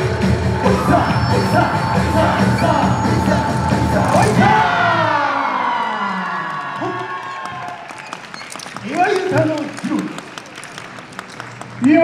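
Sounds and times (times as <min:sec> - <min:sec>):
dance music: 0:00.0 - 0:06.4
audience applause and cheering: 0:00.0 - 0:12.0.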